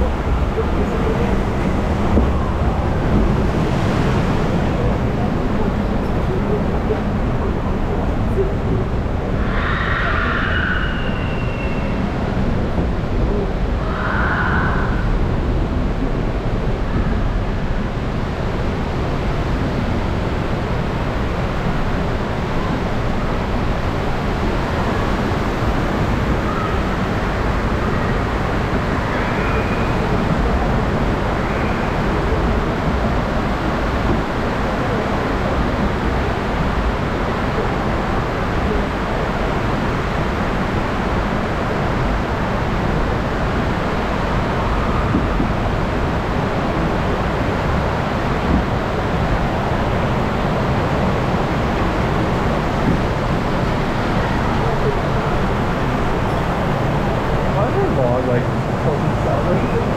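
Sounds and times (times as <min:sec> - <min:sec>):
water rushing in flume channel: 0:00.0 - 0:59.9.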